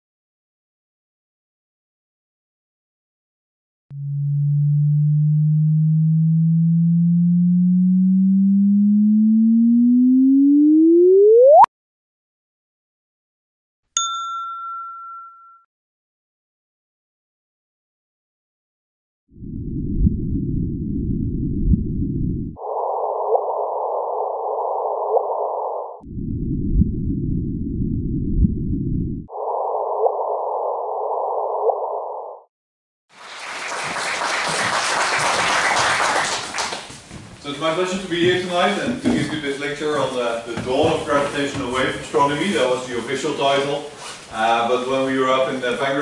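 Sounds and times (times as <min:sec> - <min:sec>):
synthetic rising pure-tone chirp: 0:03.9 - 0:11.7.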